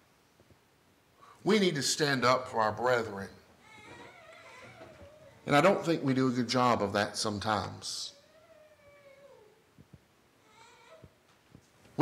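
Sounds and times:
child crying faintly: 3.6 - 5.5, 10.4 - 11.2.

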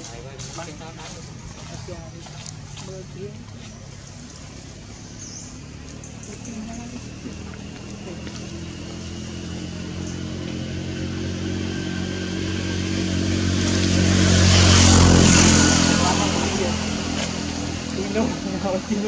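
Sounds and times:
motor vehicle driving past: 0.0 - 19.0.

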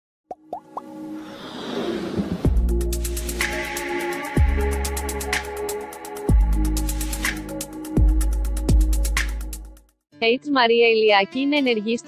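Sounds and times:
quick pops rising in pitch: 0.3 - 1.0
music build: 0.4 - 9.8.

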